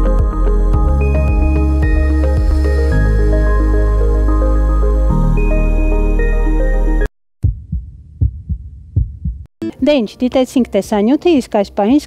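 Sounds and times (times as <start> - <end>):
background music: 0.0 - 7.1, 9.6 - 12.0
heartbeat thumps: 0.2 - 2.6, 7.4 - 9.5.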